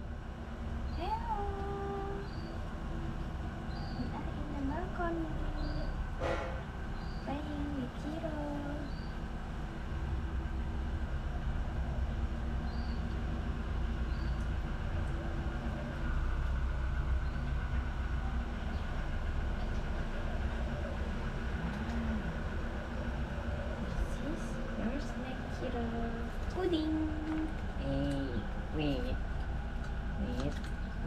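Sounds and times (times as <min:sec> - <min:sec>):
low mechanical rumble and hum: 0:00.0 - 0:31.0.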